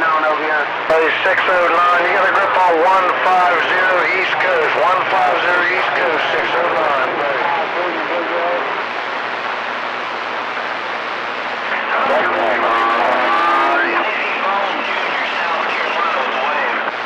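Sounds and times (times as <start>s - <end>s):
distorted radio voices: 0.0s - 17.0s
radio hiss and static: 0.0s - 17.0s.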